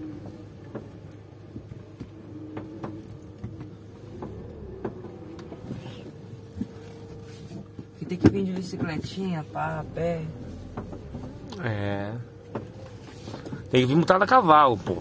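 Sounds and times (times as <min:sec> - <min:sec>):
car engine hum: 0:00.0 - 0:15.0.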